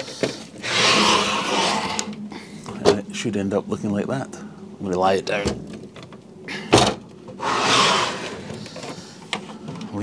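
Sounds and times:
aquarium scraping on shelf: 0:00.6 - 0:02.1, 0:07.4 - 0:08.6.

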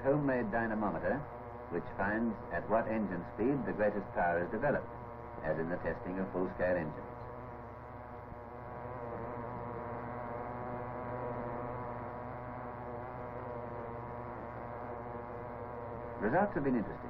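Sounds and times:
model car engine buzzing: 0:00.0 - 0:17.0.

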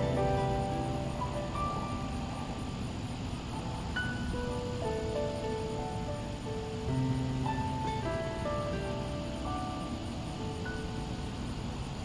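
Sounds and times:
low outdoor rumble: 0:00.0 - 0:12.0
soft guitar and piano music: 0:00.0 - 0:12.0.

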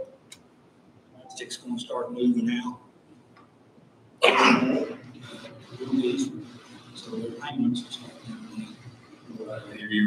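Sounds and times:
man coughing: 0:04.2 - 0:04.9.

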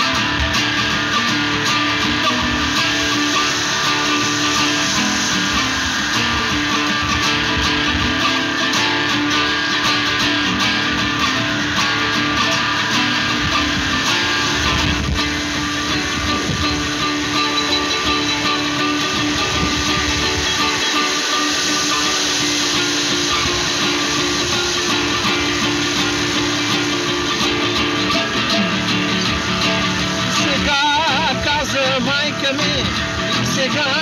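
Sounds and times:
long held tones: 0:00.0 - 0:34.0
nylon-string guitar playing: 0:00.0 - 0:34.0.

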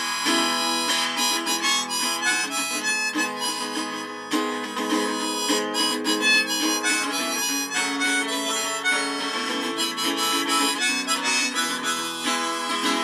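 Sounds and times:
harmonica melody: 0:00.0 - 0:13.0
strummed acoustic guitar: 0:00.0 - 0:13.0.

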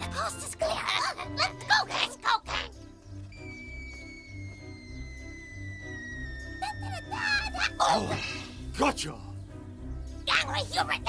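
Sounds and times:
cartoon music with pulsing beat: 0:00.0 - 0:08.8
high wavering squeaks: 0:03.3 - 0:08.6
long falling whistle: 0:03.4 - 0:07.5.

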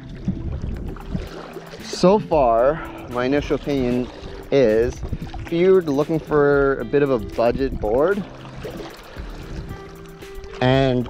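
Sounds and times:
paddle splashing water: 0:00.0 - 0:11.0.

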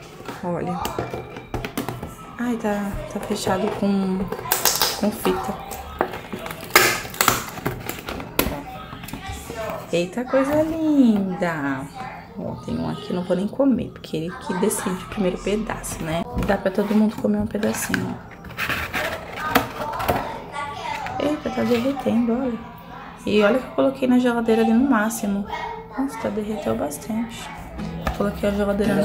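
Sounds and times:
cardboard rustling: 0:17.8 - 0:20.3.

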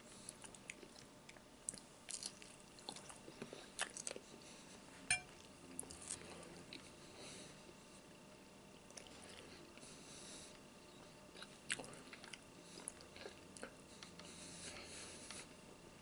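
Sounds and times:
bacon chewing crackles: 0:00.1 - 0:04.4.

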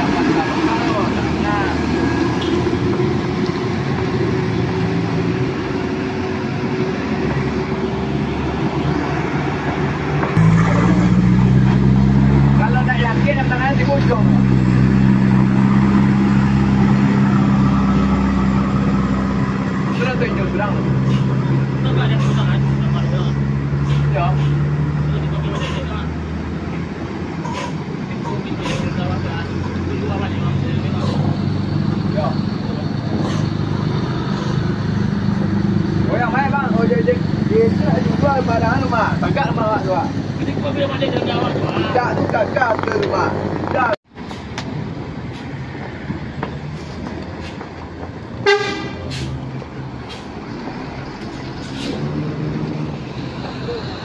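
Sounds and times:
diesel engines droning: 0:00.0 - 0:54.0.

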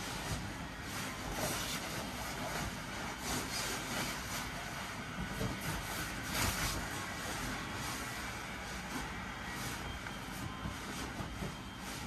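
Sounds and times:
blower fan whirring: 0:00.0 - 0:12.0
inflated fabric rustling: 0:00.0 - 0:12.0.

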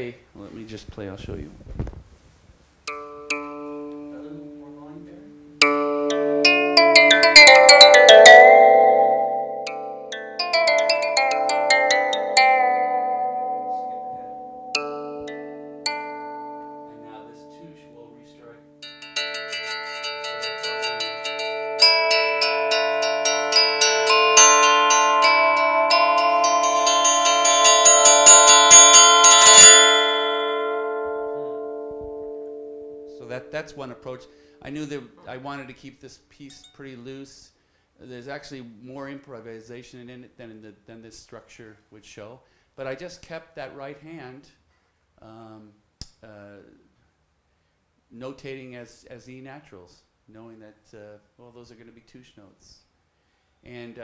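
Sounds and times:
electronic instrument notes: 0:02.9 - 0:35.5.

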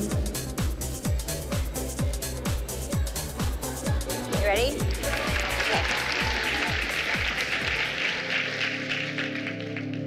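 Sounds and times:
background music: 0:00.0 - 0:10.0
applause: 0:04.8 - 0:10.0.

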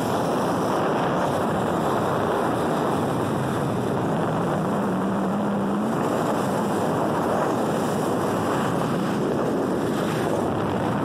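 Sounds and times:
motorboat engine and water rush: 0:00.0 - 0:11.0.

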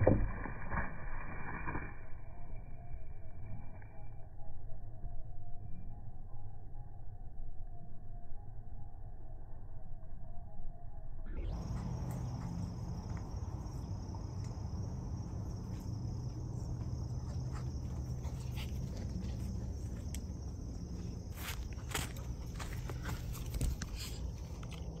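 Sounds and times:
low rumble: 0:11.2 - 0:25.0
high insect drone: 0:11.4 - 0:25.0
footsteps on dirt path: 0:15.6 - 0:25.0.

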